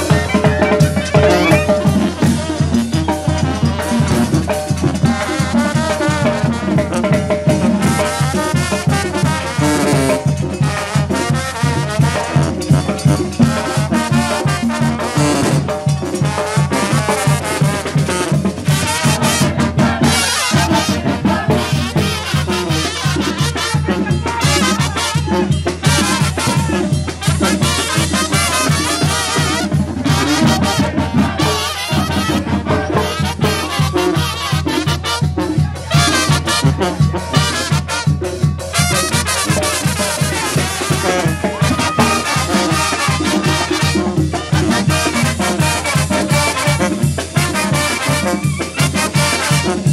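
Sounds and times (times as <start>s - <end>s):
brass band playing: 0.0s - 49.9s
congas and timbales beat: 0.0s - 49.9s.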